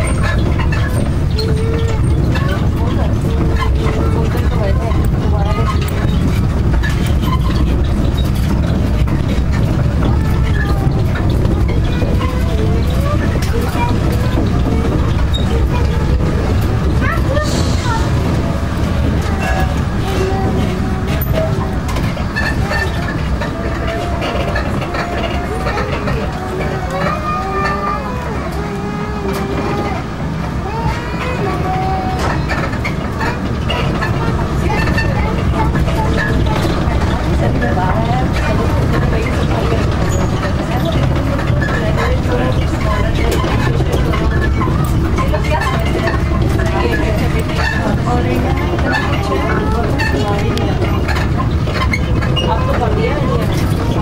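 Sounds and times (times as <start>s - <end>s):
indistinct voices: 0.0s - 54.0s.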